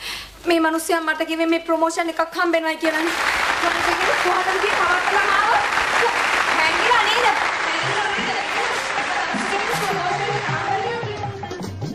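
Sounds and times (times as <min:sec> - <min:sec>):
audience applause: 0:02.9 - 0:11.2
music: 0:07.5 - 0:11.9.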